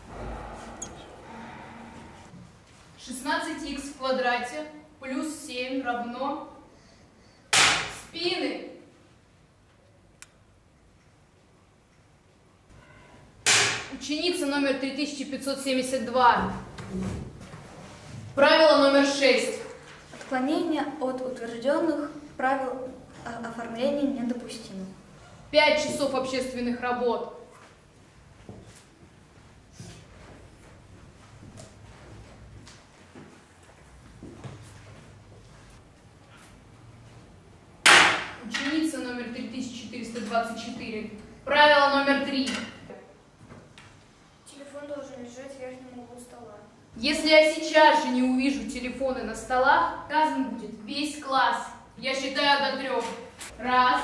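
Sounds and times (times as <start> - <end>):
loud sharp crack: 7.5 - 8.0, 13.4 - 14.0, 37.8 - 38.4.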